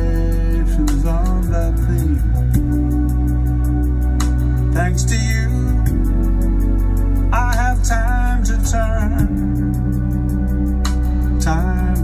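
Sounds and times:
loud song through studio monitors: 0.0 - 12.0.

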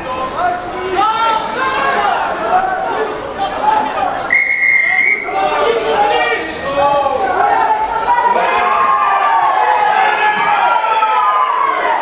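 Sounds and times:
voices shouting: 0.8 - 12.0
referee's whistle blast: 4.3 - 5.4.

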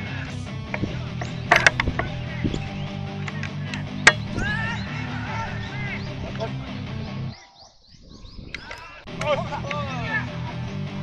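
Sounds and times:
background music: 0.0 - 7.5, 9.0 - 11.0
sharp clicks: 0.7 - 4.4
high chirping sounds: 0.7 - 9.1.

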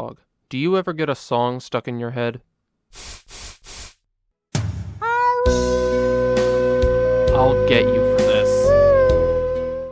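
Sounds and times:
spray bottle hisses: 2.9 - 4.0.

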